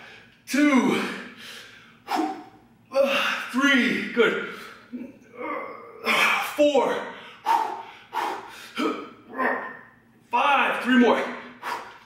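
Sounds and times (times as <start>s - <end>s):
man breathing hard: 1.1s - 3.4s, 7.1s - 9.0s, 11.4s - 12.0s.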